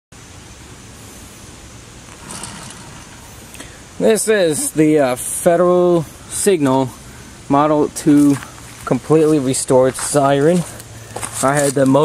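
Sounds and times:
steady background noise: 0.1s - 12.0s.

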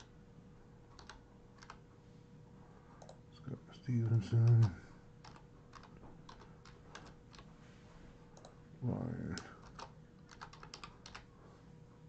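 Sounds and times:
computer keyboard typing: 0.9s - 1.8s, 4.4s - 7.5s, 8.4s - 8.6s, 9.6s - 11.3s.

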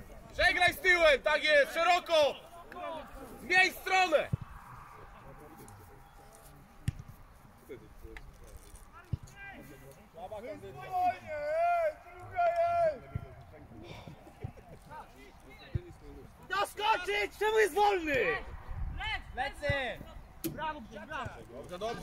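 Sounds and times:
football players shouting: 0.3s - 4.4s, 10.6s - 13.4s, 16.4s - 19.9s
ball kick thuds: 6.8s - 7.2s.

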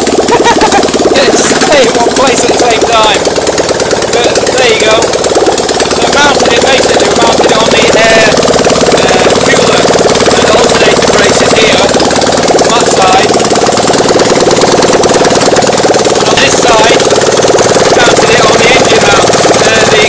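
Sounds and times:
generator engine running: 0.0s - 20.0s
generator rattling on metal frame: 0.0s - 20.0s.

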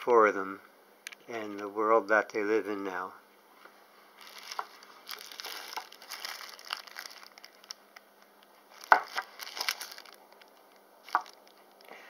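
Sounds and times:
plastic bag crinkling: 4.2s - 11.9s.

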